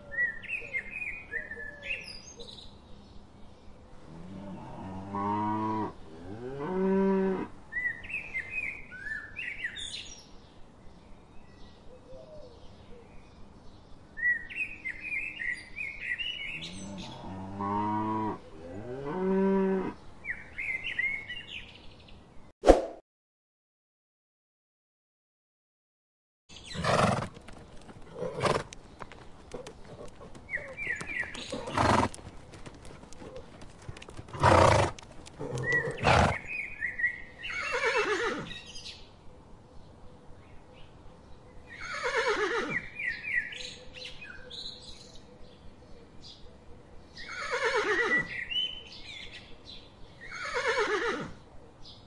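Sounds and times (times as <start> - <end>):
small birds chirping: 26.5 - 50.9.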